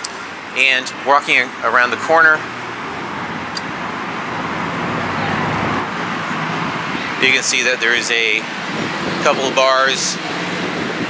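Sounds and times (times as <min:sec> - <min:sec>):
road traffic passing: 0:00.0 - 0:11.0.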